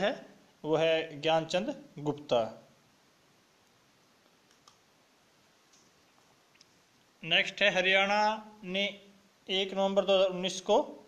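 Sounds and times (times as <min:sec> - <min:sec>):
small clicks: 0:03.6 - 0:04.9, 0:05.6 - 0:06.8.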